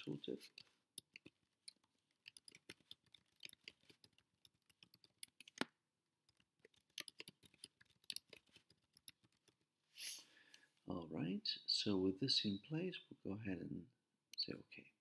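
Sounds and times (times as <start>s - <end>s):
typing on computer keyboard: 0.4s - 5.7s, 6.3s - 9.6s.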